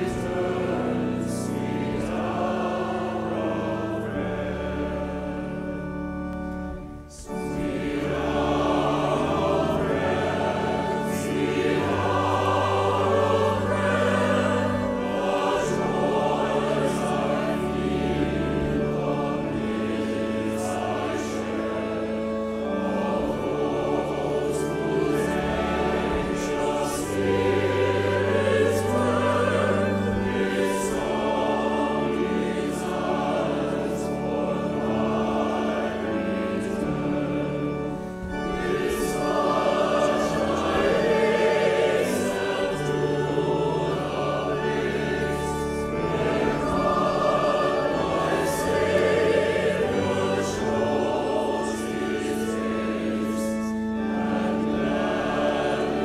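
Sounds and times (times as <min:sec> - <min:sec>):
congregation and choir singing hymn: 0:00.0 - 0:56.0.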